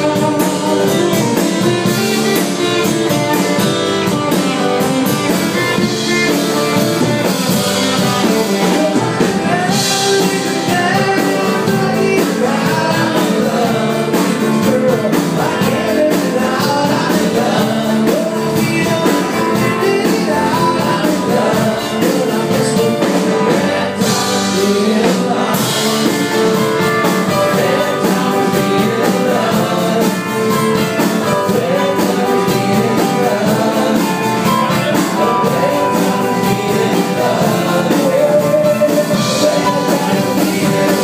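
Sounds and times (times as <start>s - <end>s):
acoustic and electric guitars: 0.0s - 41.0s
keyboard: 0.0s - 41.0s
person singing: 0.0s - 41.0s.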